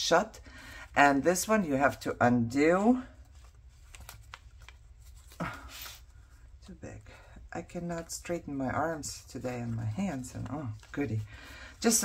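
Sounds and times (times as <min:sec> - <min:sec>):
paper pages rustling: 0:03.1 - 0:06.6, 0:08.0 - 0:12.0.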